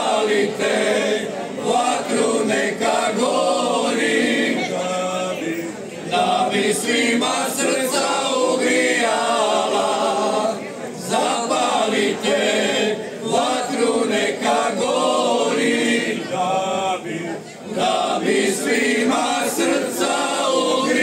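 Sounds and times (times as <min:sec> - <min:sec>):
male voices singing a cappella: 0:00.0 - 0:21.0.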